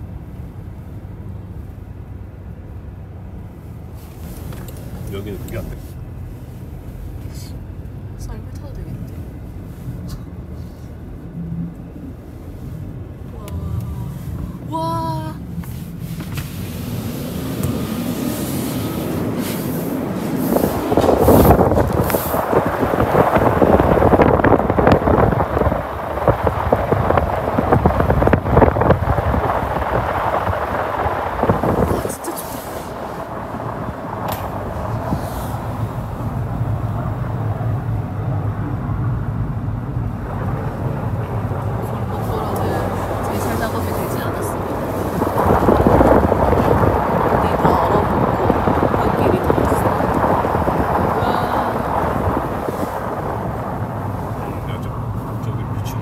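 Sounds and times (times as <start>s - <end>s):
engine humming: 0.0s - 56.0s
tyres crunching over snow: 3.6s - 37.9s, 40.2s - 56.0s.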